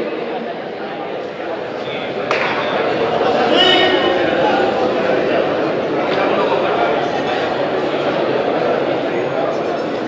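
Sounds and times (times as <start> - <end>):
spectators' voices: 0.0 - 10.0.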